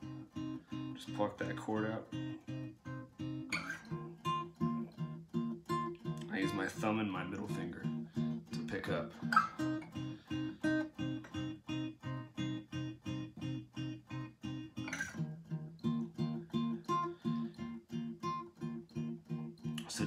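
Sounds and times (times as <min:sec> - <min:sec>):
fingerpicked acoustic guitar: 0:00.0 - 0:20.0.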